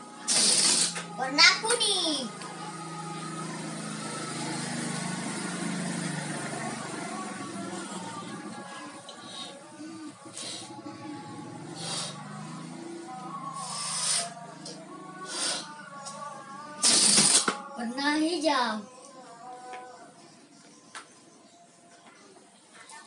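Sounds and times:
background music steady tones: 0.0s - 23.0s
breath puffs into balloon: 0.2s - 1.1s, 11.7s - 12.2s, 13.6s - 14.4s, 15.2s - 15.7s, 16.8s - 17.6s.

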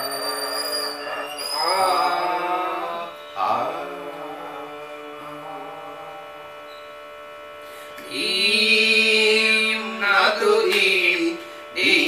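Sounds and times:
man singing: 0.0s - 6.4s, 8.0s - 12.0s
steady drone: 0.0s - 12.0s.

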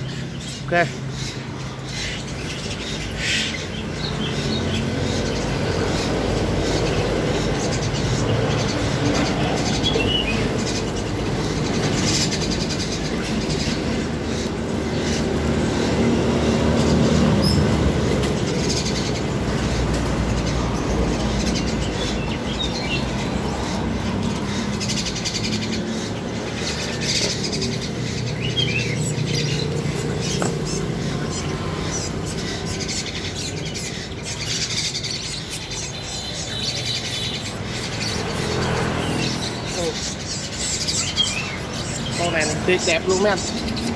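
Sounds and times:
small birds chirping: 0.0s - 43.9s.

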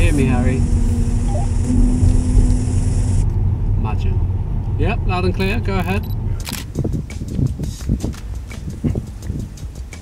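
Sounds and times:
car driving rumble from cabin: 0.0s - 10.0s.

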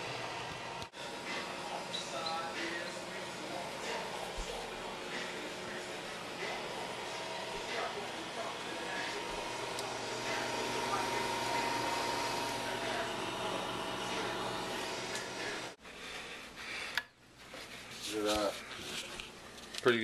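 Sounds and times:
oven fan hum: 0.0s - 16.9s.

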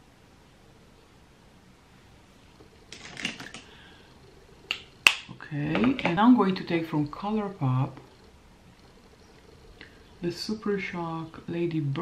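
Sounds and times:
makeup items clicking: 2.9s - 3.7s.

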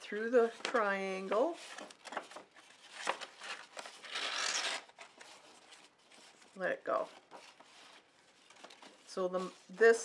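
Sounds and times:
paper rustling: 0.1s - 10.0s.

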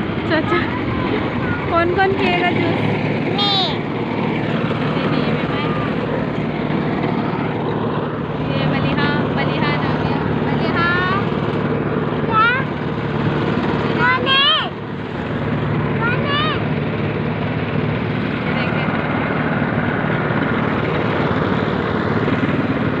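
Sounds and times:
motorcycle engine running: 0.0s - 23.0s.

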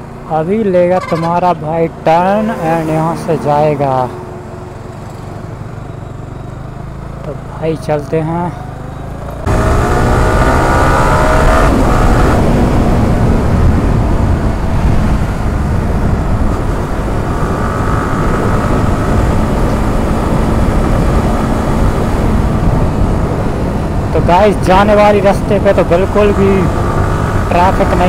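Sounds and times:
motorcycle engine accelerating: 0.0s - 28.0s
wind rushing over microphone: 9.5s - 28.0s.

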